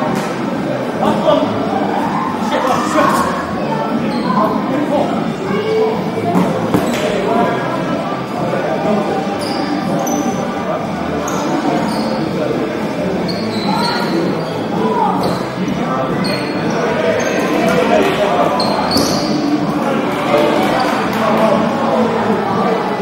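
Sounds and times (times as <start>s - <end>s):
shouting and chatter: 0.0s - 23.0s
shoe squeaks: 4.0s - 4.6s, 9.3s - 10.5s, 11.1s - 12.5s, 13.1s - 17.8s, 18.4s - 19.6s.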